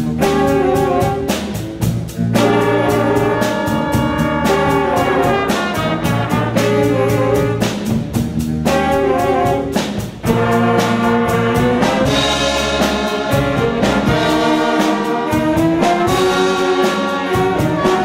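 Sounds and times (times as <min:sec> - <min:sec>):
cymbal and drum strokes: 0:00.0 - 0:18.0
jazz big band playing: 0:00.0 - 0:18.0.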